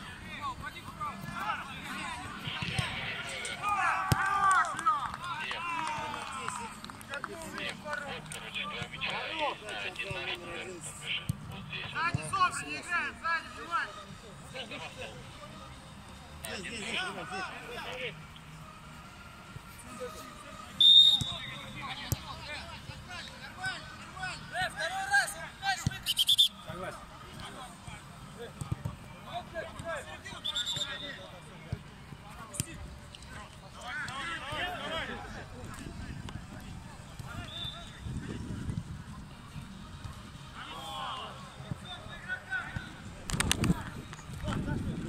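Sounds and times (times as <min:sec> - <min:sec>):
players shouting: 0:01.3 - 0:07.6
high whistle blasts: 0:20.8 - 0:21.5, 0:26.0 - 0:26.6, 0:30.4 - 0:31.2, 0:37.4 - 0:37.9.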